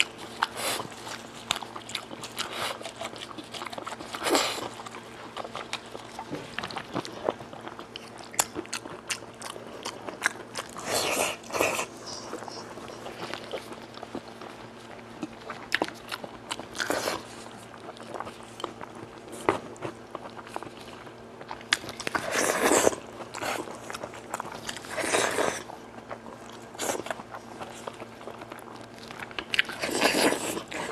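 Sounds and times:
person biting and chewing meat: 0.0s - 30.9s
wet eating clicks and smacks: 21.4s - 22.2s.

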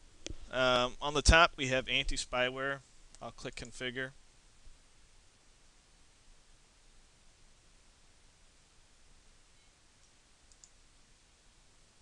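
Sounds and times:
steady low hiss: 0.0s - 12.0s
computer mouse clicks: 10.0s - 10.8s.

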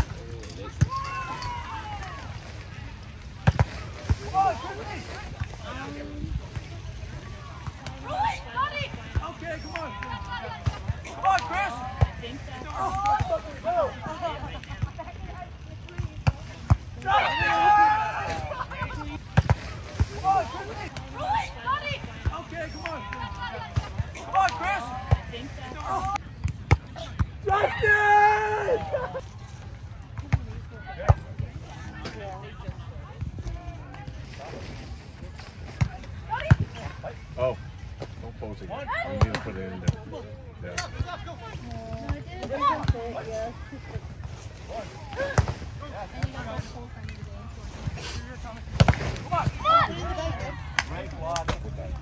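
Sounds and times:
players shouting: 17.0s - 19.3s, 26.9s - 29.2s, 49.2s - 51.2s.

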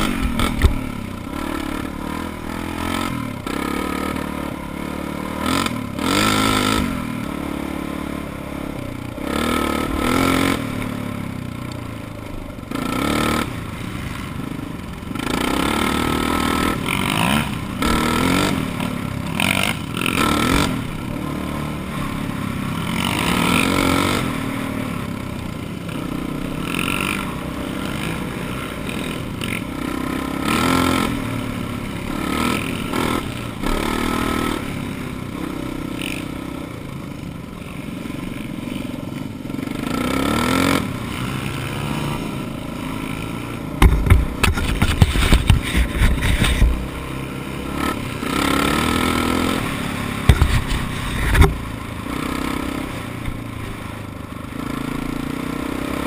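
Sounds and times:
dirt bike engine revving: 0.0s - 11.7s, 12.6s - 36.8s, 37.6s - 56.0s
bike rattling over bumps: 43.7s - 47.0s, 47.8s - 51.8s.

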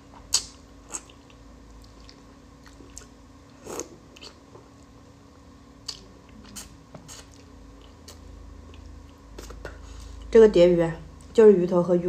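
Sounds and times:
person chewing with wet clicks: 0.1s - 5.0s, 5.8s - 10.3s.

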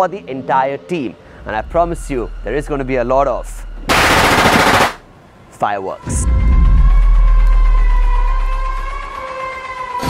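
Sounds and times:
high siren-like drone: 6.8s - 10.0s.

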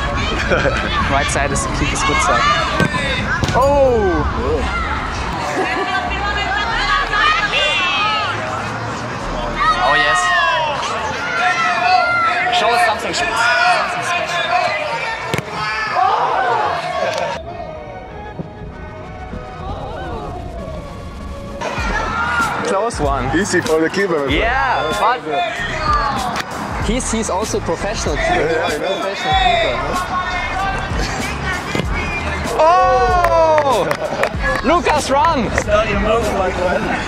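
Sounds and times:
voices: 0.0s - 37.0s
football kicked hard: 2.7s - 3.7s, 15.3s - 15.6s, 31.7s - 32.0s
background music: 17.4s - 37.0s.

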